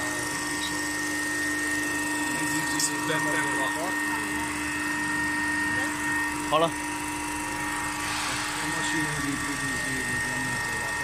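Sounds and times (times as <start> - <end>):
machine humming with high whine: 0.0 - 11.0.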